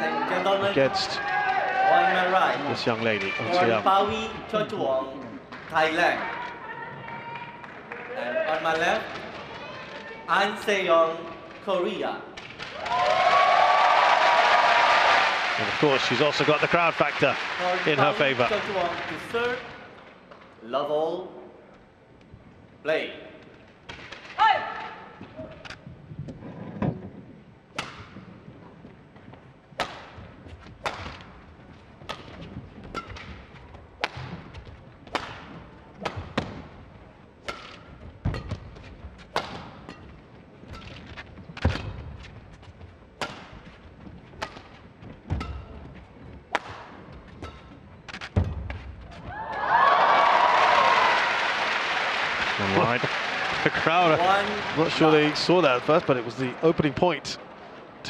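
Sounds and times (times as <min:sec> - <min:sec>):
rackets hitting shuttlecock: 0:27.7 - 0:28.3, 0:29.8 - 0:31.4, 0:32.0 - 0:36.8, 0:37.4 - 0:42.4, 0:43.2 - 0:49.6.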